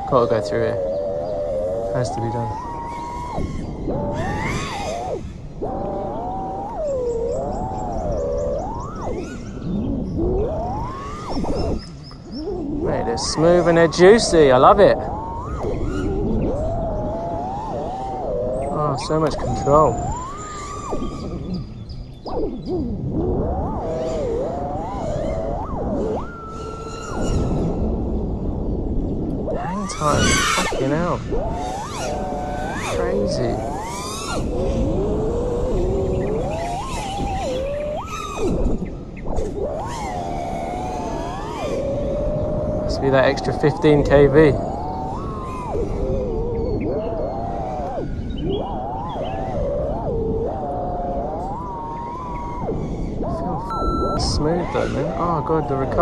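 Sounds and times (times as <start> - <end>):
drone motors whining: 0.0 - 56.0
wind noise: 0.0 - 56.0.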